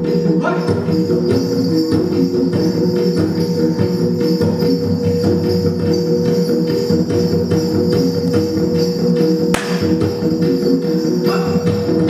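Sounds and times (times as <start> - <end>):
jingling bells: 0.0 - 12.0
steady drum beat: 6.9 - 12.0.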